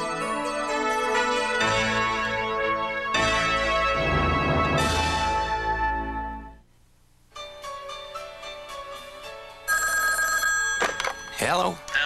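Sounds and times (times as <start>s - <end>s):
telephone ringing: 9.7s - 12.0s.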